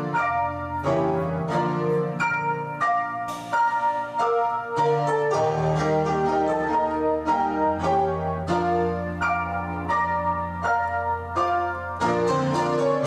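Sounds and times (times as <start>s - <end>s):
slow piano melody: 0.0s - 13.0s.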